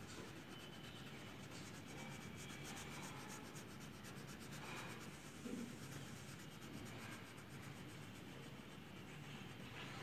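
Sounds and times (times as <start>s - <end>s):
crayon scratching on paper: 0.0s - 10.0s.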